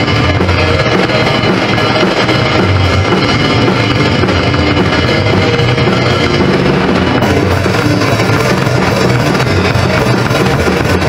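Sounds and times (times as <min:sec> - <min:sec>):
guitar-led rock music: 0:00.0 - 0:11.0.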